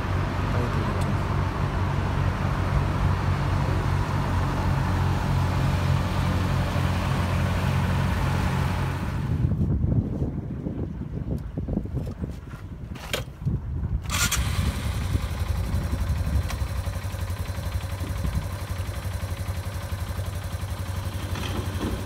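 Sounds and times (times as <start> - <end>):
ferry engine droning: 0.0 - 9.7, 14.1 - 22.0
wind noise: 8.7 - 18.8.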